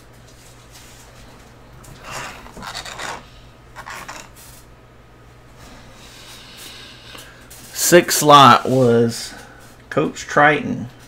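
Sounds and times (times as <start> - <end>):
low steady hum: 0.0 - 11.0
card rubbing against fingers: 2.0 - 4.4.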